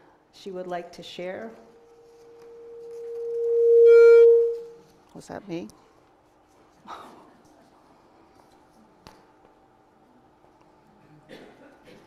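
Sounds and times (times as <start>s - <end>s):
microphone feedback howl: 1.6s - 4.8s.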